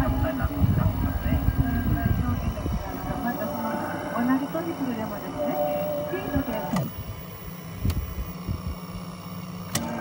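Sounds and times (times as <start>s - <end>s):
tape transport mechanical hum: 0.0s - 10.0s.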